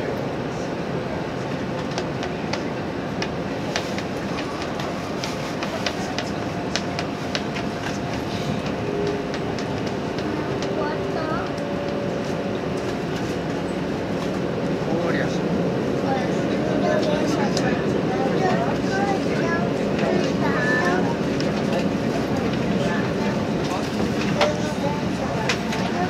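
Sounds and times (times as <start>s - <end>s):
train wheels rumbling on rail: 0.0s - 26.0s.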